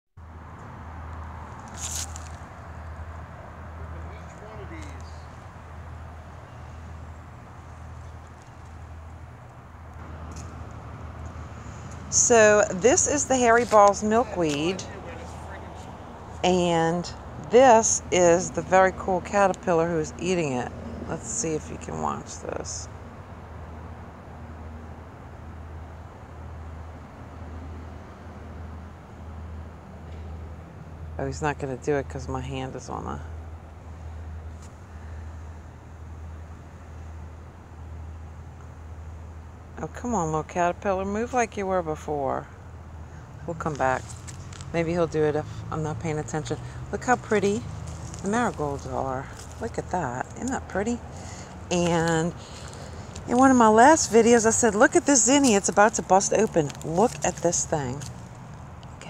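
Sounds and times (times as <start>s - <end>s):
low outdoor rumble: 0.2s - 59.0s
short rustle: 1.5s - 2.5s.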